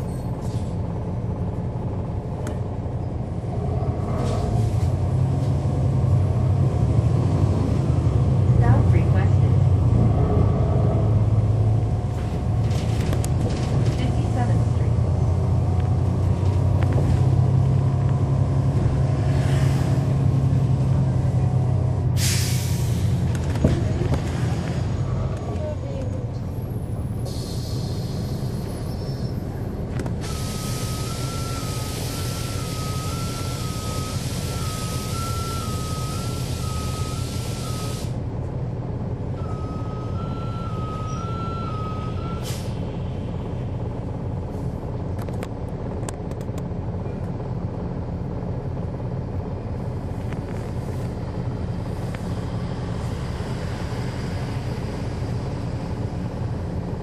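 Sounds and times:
bus diesel engine drone: 0.0s - 57.0s
air brake hiss: 22.2s - 23.2s, 27.2s - 28.7s, 30.2s - 38.2s, 42.4s - 42.8s.

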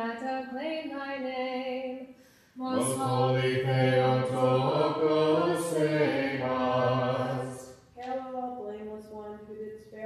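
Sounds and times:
voices chanting a hymn: 2.6s - 7.8s.

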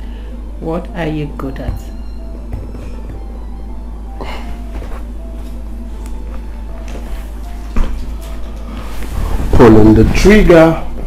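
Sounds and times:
soft background music: 0.0s - 11.0s
steady low hum: 0.0s - 11.0s.

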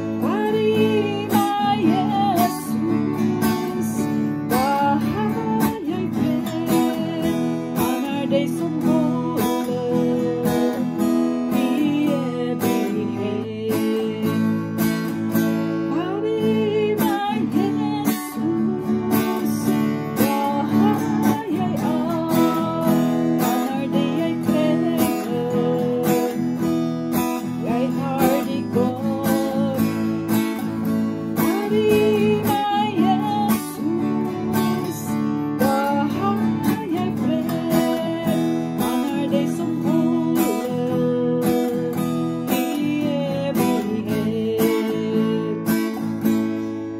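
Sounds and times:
woman singing gospel: 0.0s - 14.8s, 15.9s - 26.7s, 27.4s - 30.3s, 31.2s - 45.9s
acoustic guitar strumming: 0.0s - 46.9s.

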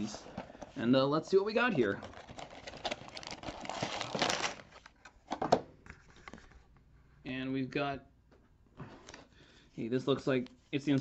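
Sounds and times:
plastic bags crinkling: 1.7s - 5.0s.

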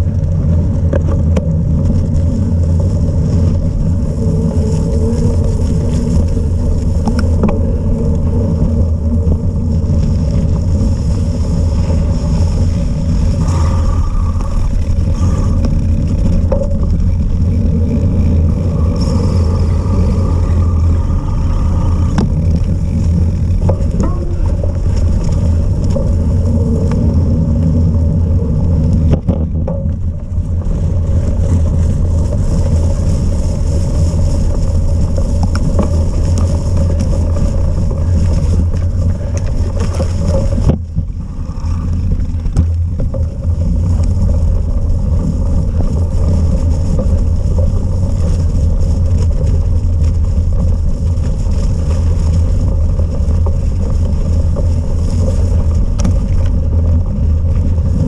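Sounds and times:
bike tyres on muddy trail: 0.0s - 58.0s
wind buffeting microphone: 0.0s - 58.0s.

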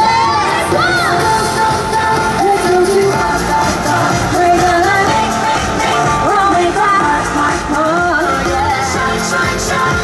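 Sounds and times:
crowd cheering and shouting: 0.0s - 10.0s
loud parade music: 0.0s - 10.0s.

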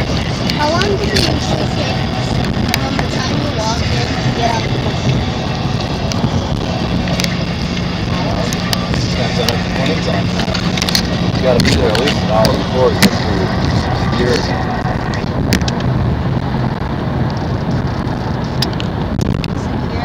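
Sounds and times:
car road noise from inside: 0.0s - 20.0s
low steady hum: 0.0s - 20.0s.

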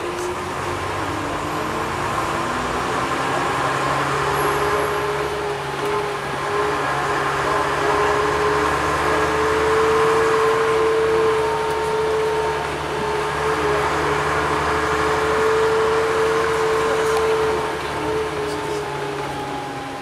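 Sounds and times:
bus diesel engine hum: 0.0s - 20.0s
steady engine whine: 0.0s - 20.0s.

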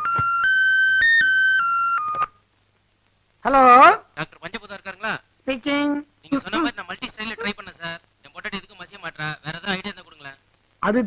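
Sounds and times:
telephone electronic ring: 0.0s - 2.3s.

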